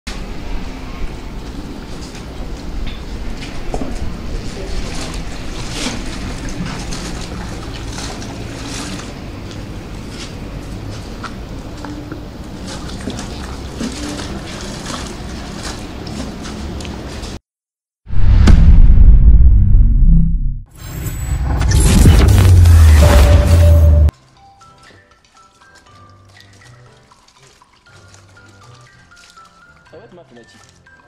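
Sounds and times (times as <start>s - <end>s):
outdoor background rumble: 0.1s - 17.4s, 18.1s - 24.1s
water splashing in plastic bucket: 3.8s - 17.4s, 25.2s - 31.0s.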